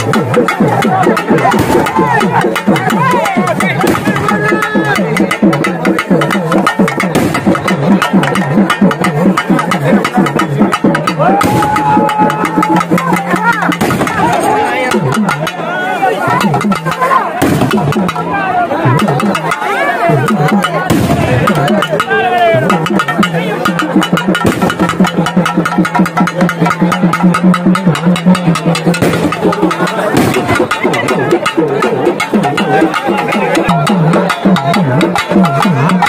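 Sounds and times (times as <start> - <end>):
crowd voices: 0.0 - 36.0
drums beating fast rhythm: 0.0 - 36.0.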